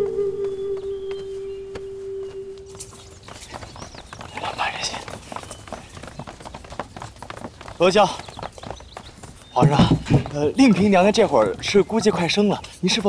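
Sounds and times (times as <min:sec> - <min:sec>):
group footsteps walking: 0:00.0 - 0:13.0.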